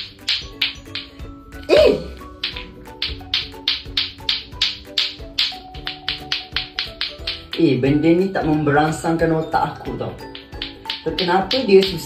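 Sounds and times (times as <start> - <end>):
background music: 0.0 - 12.0
plastic balls clacking: 0.0 - 12.0.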